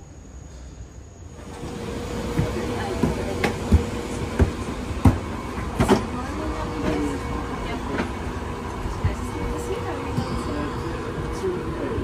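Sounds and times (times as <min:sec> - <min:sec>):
airplane cabin hum: 0:01.4 - 0:10.7
footsteps on carpeted stairs: 0:02.3 - 0:06.0, 0:08.7 - 0:10.4
voices murmuring: 0:02.3 - 0:12.0.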